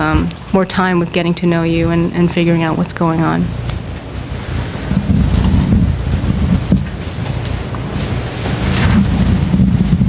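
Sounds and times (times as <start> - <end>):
low rumble on microphone: 0.0 - 10.0.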